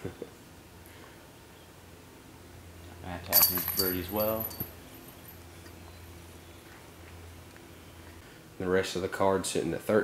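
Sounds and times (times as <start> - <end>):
chains jingling: 3.3 - 5.4
disc hitting metal chains: 3.3 - 5.4.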